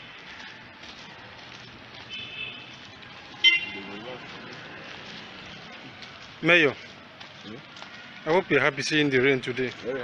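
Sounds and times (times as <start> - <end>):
street ambience: 0.0 - 10.0
car horn toot: 3.4 - 3.9.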